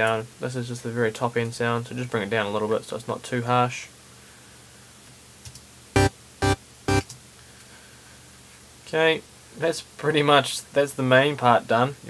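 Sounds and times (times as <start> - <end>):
bright synth stabs: 6.0 - 7.1.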